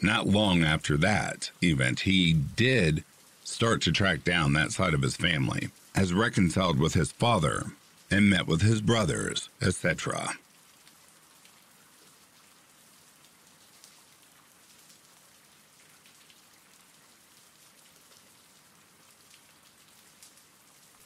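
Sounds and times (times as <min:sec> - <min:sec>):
rain hiss: 0:00.0 - 0:21.0
raindrop ticks: 0:00.0 - 0:21.0.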